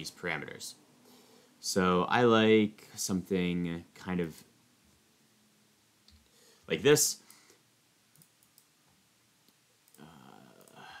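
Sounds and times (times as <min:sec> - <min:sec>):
person speaking: 0:06.7 - 0:07.3
computer mouse clicks: 0:08.1 - 0:08.7.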